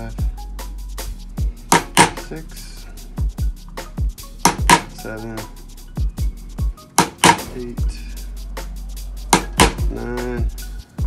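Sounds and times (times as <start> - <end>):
background music with thumping beat: 0.0 - 11.0
hammer striking metal punch: 1.7 - 2.2, 4.4 - 4.9, 7.0 - 7.6, 9.4 - 9.9.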